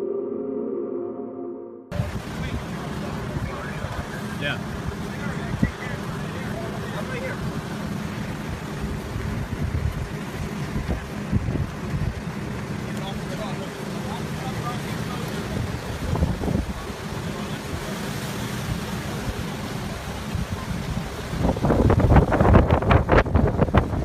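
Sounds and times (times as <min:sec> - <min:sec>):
wind buffeting microphone: 0:01.9 - 0:06.0, 0:08.2 - 0:12.9, 0:15.4 - 0:18.0, 0:18.7 - 0:24.0.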